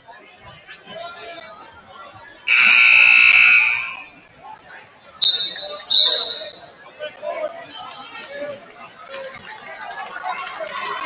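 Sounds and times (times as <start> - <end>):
crowd chatter: 0.0 - 11.0
referee's whistle blast: 2.5 - 4.1, 5.2 - 6.6
scoreboard horn: 2.5 - 4.1.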